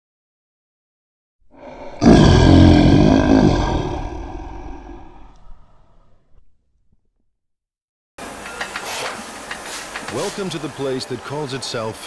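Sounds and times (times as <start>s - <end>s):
lion roaring: 1.5s - 6.4s.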